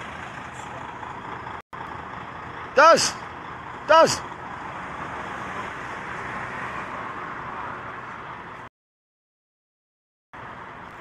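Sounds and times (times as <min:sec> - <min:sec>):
road traffic noise: 0:00.0 - 0:08.7, 0:10.4 - 0:11.0.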